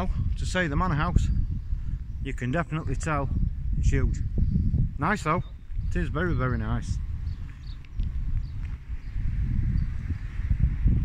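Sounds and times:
wind buffeting microphone: 0:00.0 - 0:11.0
footsteps on pavement: 0:07.1 - 0:09.2.

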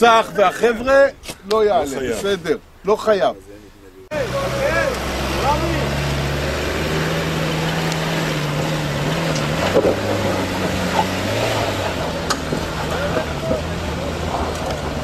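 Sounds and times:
engine running under load: 0:04.1 - 0:15.0.

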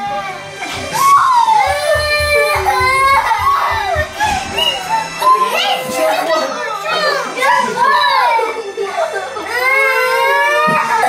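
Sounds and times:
children wailing and crying: 0:00.0 - 0:11.0.

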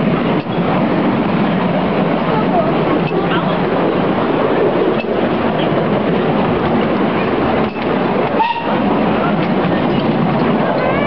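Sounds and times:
miniature steam train running: 0:00.0 - 0:11.0.

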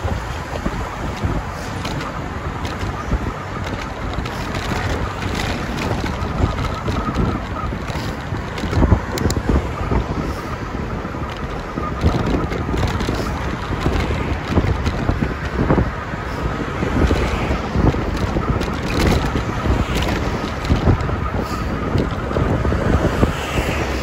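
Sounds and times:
road noise: 0:00.0 - 0:24.0
wind buffeting microphone: 0:00.0 - 0:24.0.

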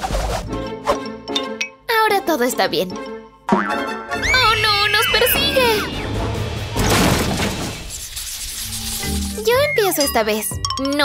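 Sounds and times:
background music: 0:00.0 - 0:07.9, 0:08.6 - 0:11.0
sudden crash: 0:05.6 - 0:08.1.

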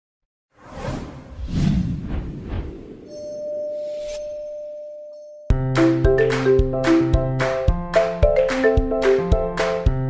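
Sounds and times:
whoosh swishes: 0:00.6 - 0:03.2.

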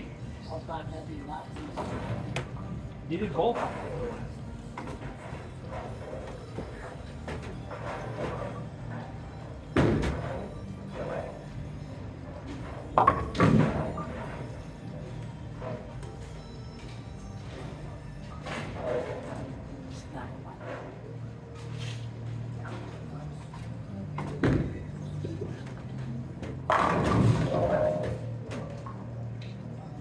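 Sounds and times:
background music: 0:00.0 - 0:30.0
bowling ball striking pins: 0:26.5 - 0:28.8.

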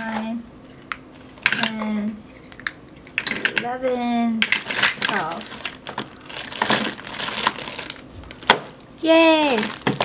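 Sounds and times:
plastic bag crinkling: 0:04.5 - 0:10.0.

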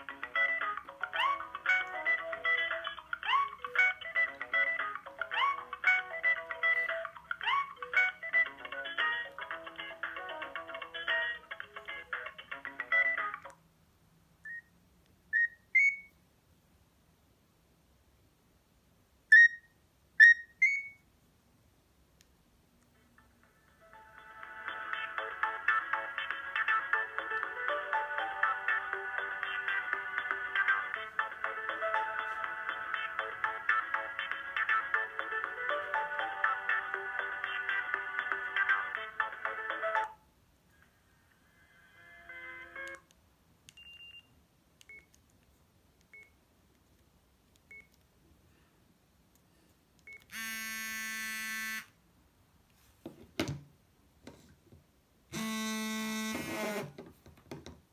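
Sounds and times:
polyphonic ringtone melody: 0:00.0 - 0:13.4, 0:23.2 - 0:40.2
phone key beeps: 0:19.3 - 0:19.6, 0:43.8 - 0:44.3, 0:47.7 - 0:48.0, 0:50.1 - 0:50.8.

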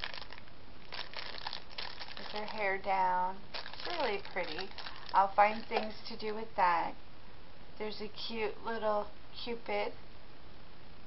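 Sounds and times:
plastic packaging crinkling: 0:00.0 - 0:06.1.

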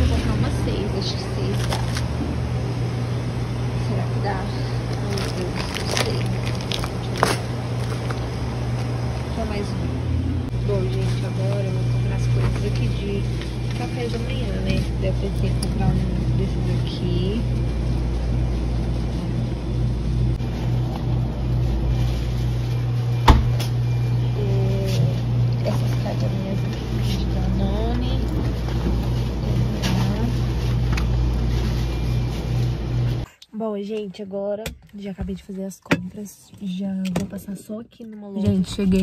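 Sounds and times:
steady low hum: 0:00.0 - 0:33.4
plastic packets rustling: 0:04.9 - 0:08.3.

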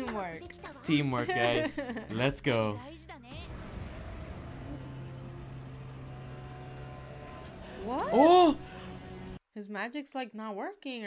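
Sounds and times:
low drone: 0:03.4 - 0:09.4.

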